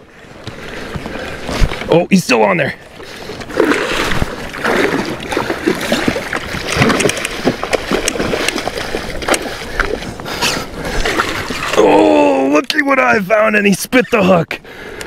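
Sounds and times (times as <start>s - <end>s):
water splashing and sloshing: 0.0s - 15.0s.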